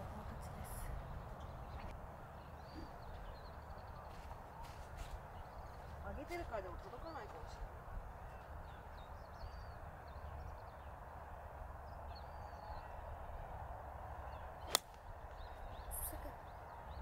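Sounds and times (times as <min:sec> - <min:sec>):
outdoor background noise: 0:00.0 - 0:17.0
golf club striking ball: 0:14.7 - 0:15.0.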